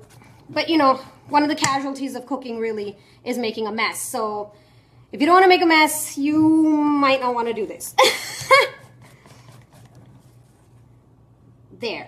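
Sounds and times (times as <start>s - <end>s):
woman laughing breathily: 8.0s - 9.2s.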